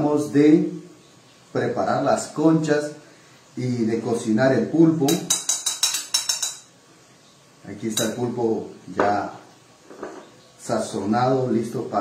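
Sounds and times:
knife clinking against plate: 5.1 - 6.7.

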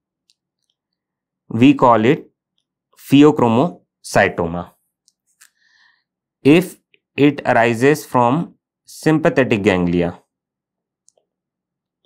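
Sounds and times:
man speaking: 1.5 - 2.3, 3.0 - 4.8, 6.5 - 10.3.

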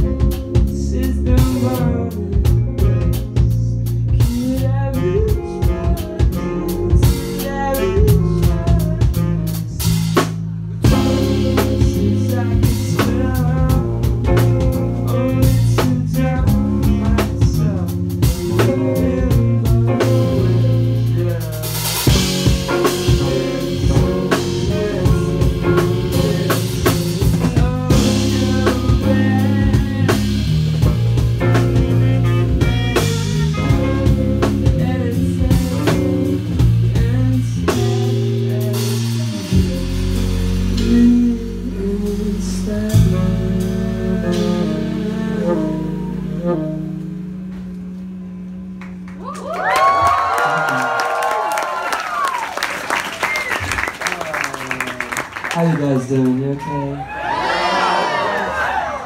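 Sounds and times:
live rock band playing: 0.0 - 58.8
audience cheering: 48.8 - 59.0.

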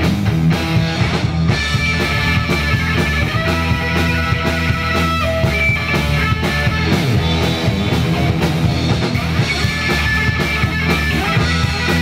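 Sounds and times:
drums: 0.0 - 12.0
electric bass guitar: 0.0 - 12.0
electric guitar: 0.0 - 12.0.

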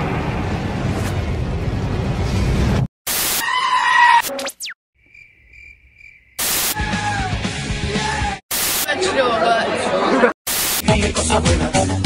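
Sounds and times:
burst of static noise: 3.1 - 3.4, 6.4 - 6.8, 8.5 - 8.9, 10.5 - 10.8
goat screaming: 3.4 - 4.3.

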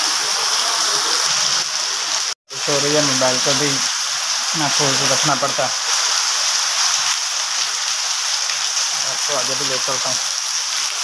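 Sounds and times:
heavy rain falling: 0.0 - 11.0
water pouring off awnings: 0.0 - 11.0.

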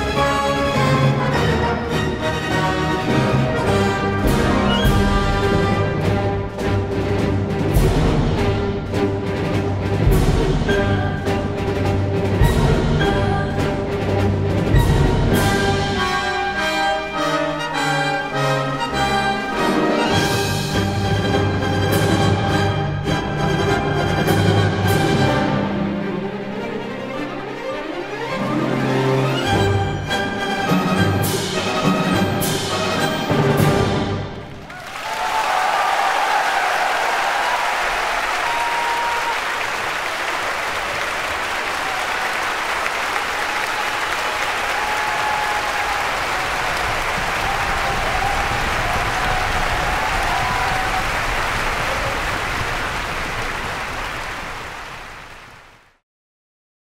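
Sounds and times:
symphony orchestra playing: 0.0 - 34.7
percussion strikes: 3.6 - 16.6
audience applause: 34.3 - 56.0
audience cheering: 34.5 - 55.8.

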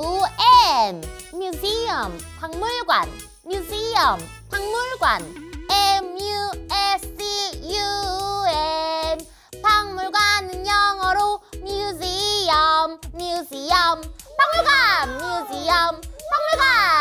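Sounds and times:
child-like voice singing: 4.6 - 17.0.

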